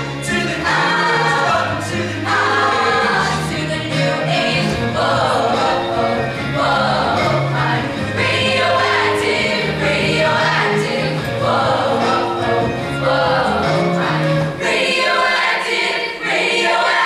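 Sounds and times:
mixed choir singing pop song: 0.0s - 17.0s.

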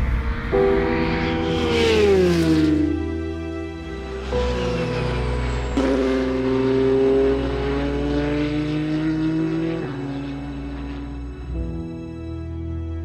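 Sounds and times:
race car engine accelerating: 0.0s - 11.6s.

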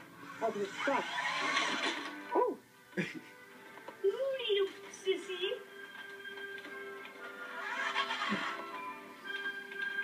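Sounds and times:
toy truck electric motor whirring: 0.2s - 2.2s, 7.3s - 8.7s.

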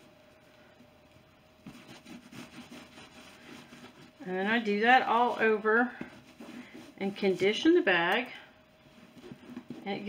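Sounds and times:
cloth rubbing on leather: 1.6s - 7.9s, 8.8s - 10.0s.

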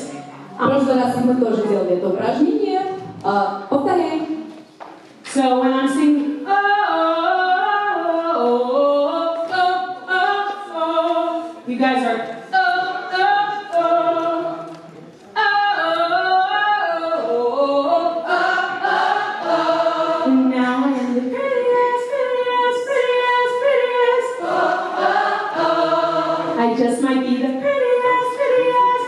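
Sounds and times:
woman singing vocal exercise: 15.4s - 29.0s.

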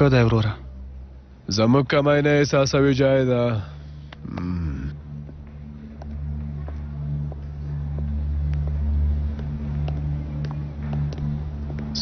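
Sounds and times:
low droning ambient music: 0.0s - 12.0s.

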